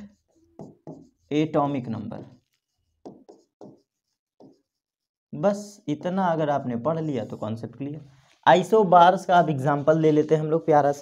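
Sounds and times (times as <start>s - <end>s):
stylus writing on glass: 0.0s - 5.2s.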